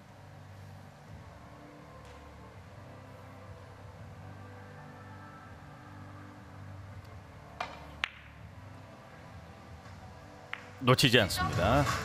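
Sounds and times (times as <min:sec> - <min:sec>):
low steady hall hum: 0:00.0 - 0:12.0
billiard balls clicking together: 0:07.6 - 0:08.4, 0:10.5 - 0:10.8
cue striking billiard ball: 0:07.6 - 0:08.4, 0:10.5 - 0:10.8.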